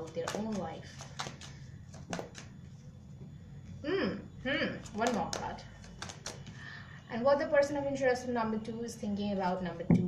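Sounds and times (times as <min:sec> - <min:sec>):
faint steady hum: 0:00.0 - 0:10.0
cards clicking: 0:00.2 - 0:02.5, 0:04.9 - 0:06.5.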